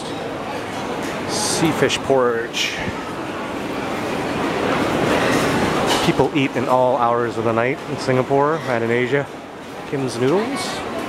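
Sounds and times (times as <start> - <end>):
busy food centre crowd noise: 0.0 - 11.0.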